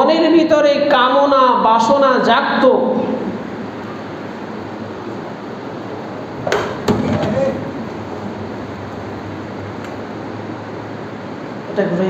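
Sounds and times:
steady background hum: 0:00.0 - 0:12.0
sharp clicks of fan: 0:06.4 - 0:08.0, 0:08.8 - 0:10.4.

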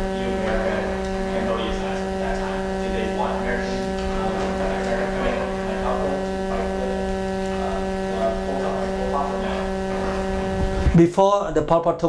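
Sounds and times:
faint distant speech: 0:00.0 - 0:11.0
electrical hum: 0:00.0 - 0:11.8.

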